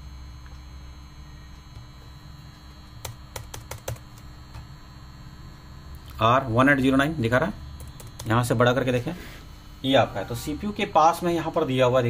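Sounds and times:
laptop keyboard typing: 3.0s - 4.6s, 7.8s - 8.6s.

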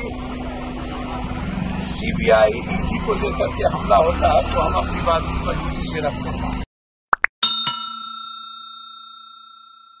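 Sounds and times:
bell-like ding chime: 7.4s - 10.0s.

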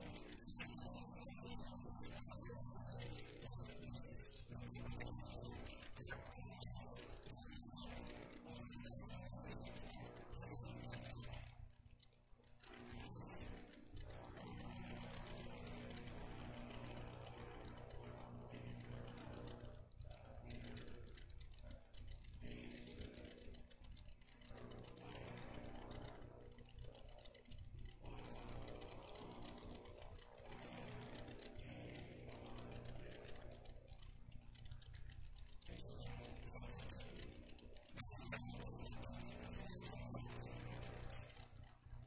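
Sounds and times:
low electrical hum: 0.0s - 42.0s.

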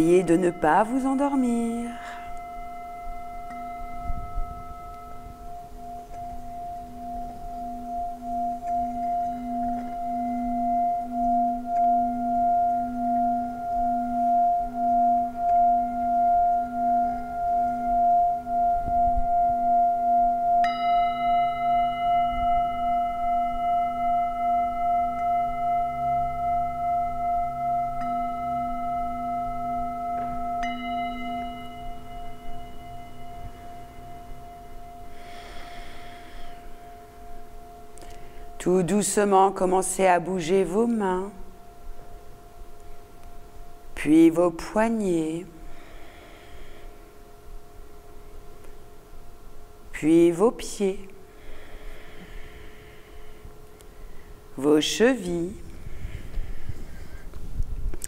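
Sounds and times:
singing bowl struck with mallet: 0.0s - 41.5s.

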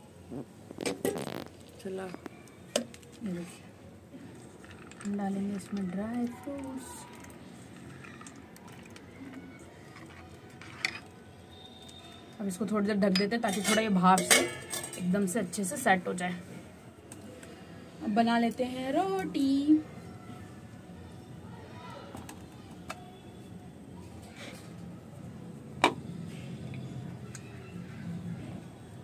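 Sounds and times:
low background noise: 0.0s - 29.0s
steel spoon stirring: 4.4s - 12.1s
spoon clinking against pot: 13.1s - 15.1s.

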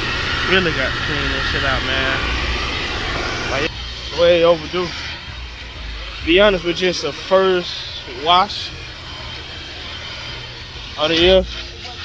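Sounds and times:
low rumble: 0.0s - 11.8s.

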